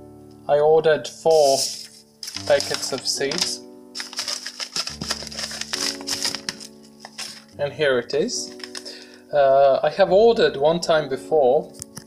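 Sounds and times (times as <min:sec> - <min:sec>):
slow piano music: 0:00.0 - 0:12.0
paper rustling and crinkling: 0:01.3 - 0:07.6, 0:08.4 - 0:09.1.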